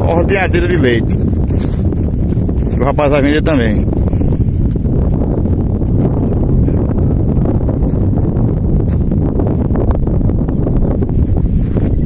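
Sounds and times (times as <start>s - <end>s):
horse hoofbeats on dirt: 0.0s - 10.0s
steady low rumble: 0.0s - 12.0s.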